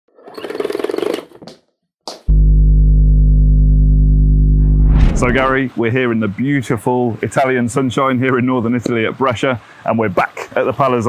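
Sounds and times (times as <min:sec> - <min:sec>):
short swish: 0:04.7 - 0:05.7.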